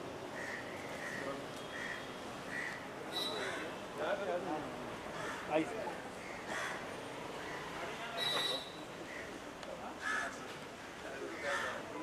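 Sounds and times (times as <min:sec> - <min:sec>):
murmur of background voices: 0:00.0 - 0:12.0
harsh bird call: 0:01.0 - 0:03.6.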